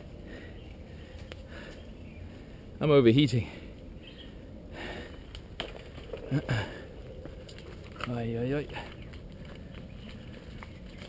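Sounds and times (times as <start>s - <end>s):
bike rolling over rocky trail: 5.3s - 11.0s.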